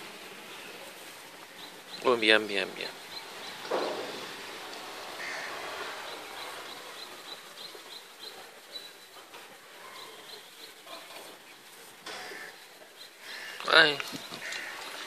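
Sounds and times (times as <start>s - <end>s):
small birds chirping: 0.0s - 15.0s.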